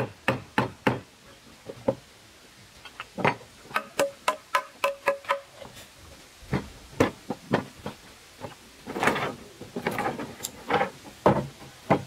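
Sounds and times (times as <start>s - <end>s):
hammer striking wood chisel: 3.7s - 5.5s.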